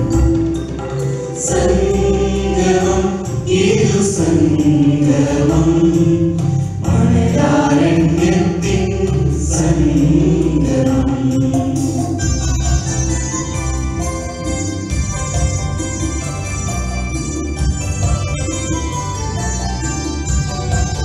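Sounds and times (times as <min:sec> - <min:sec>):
musical backing: 0:00.0 - 0:21.0
mixed choir singing: 0:01.3 - 0:12.3.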